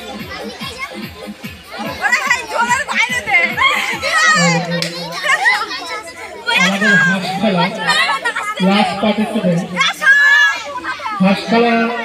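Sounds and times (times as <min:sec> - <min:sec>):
people shouting excitedly: 0:01.6 - 0:12.0.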